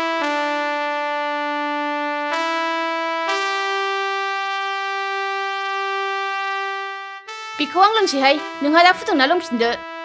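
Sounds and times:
held synthesizer chord: 0.0 - 10.0.

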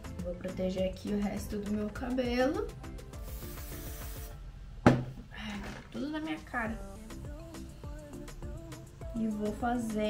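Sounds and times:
aerosol spray hissing: 3.1 - 4.4.

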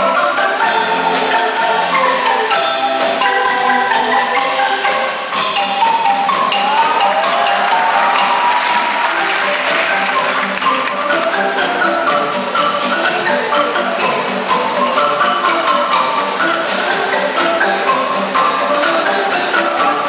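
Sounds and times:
bamboo marimbas and xylophones: 0.0 - 20.0.

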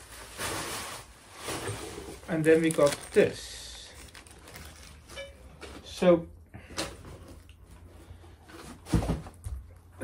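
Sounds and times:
cardboard packaging rustling: 0.0 - 5.8.

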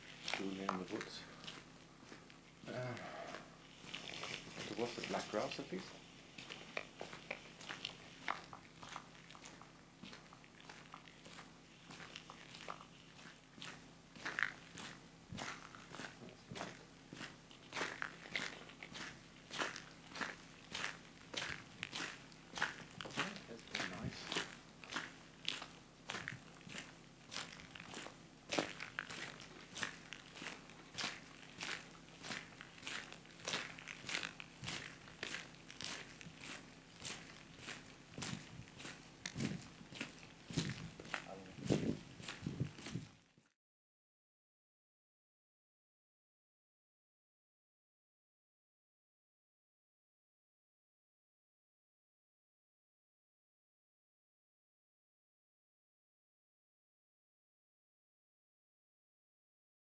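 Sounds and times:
footsteps on gravel: 0.0 - 43.3.

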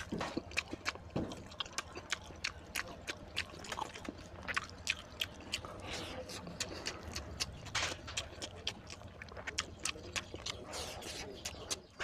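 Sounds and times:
wet chewing and lip smacking: 0.0 - 12.0.

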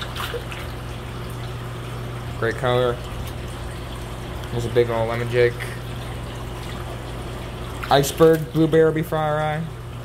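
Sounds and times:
aquarium water trickling: 0.0 - 10.0
low pump hum: 0.0 - 10.0.

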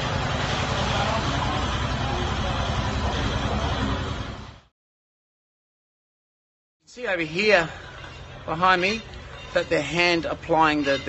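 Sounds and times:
gas burner flame rushing: 0.0 - 4.7
faint voices: 0.5 - 4.3.

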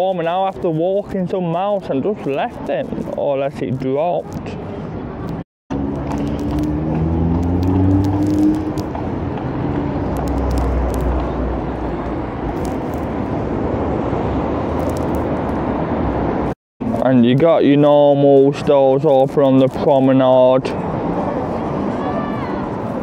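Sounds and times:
cars passing: 4.3 - 19.0, 19.6 - 23.0
car engine pulling away: 5.7 - 11.2.

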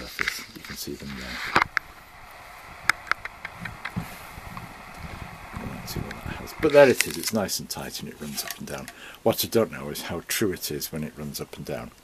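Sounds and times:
soft low bumps: 0.0 - 8.9.

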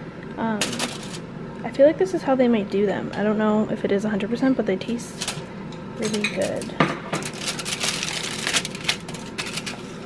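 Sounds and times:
aluminium foil rustling: 0.6 - 1.2, 5.1 - 10.0.

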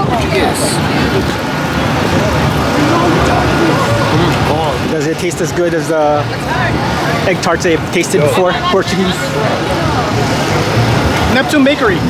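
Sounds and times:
faint voices: 0.0 - 12.0
low engine hum: 0.0 - 12.0.

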